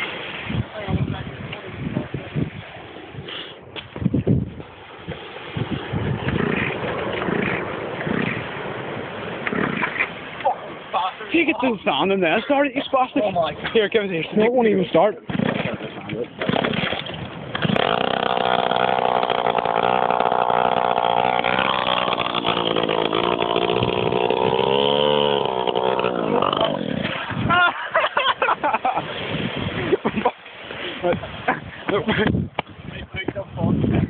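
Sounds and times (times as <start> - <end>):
small petrol scooter engine: 17.6 - 26.8.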